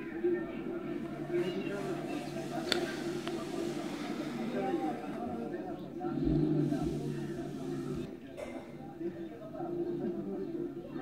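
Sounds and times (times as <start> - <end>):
men chattering: 0.0 - 11.0.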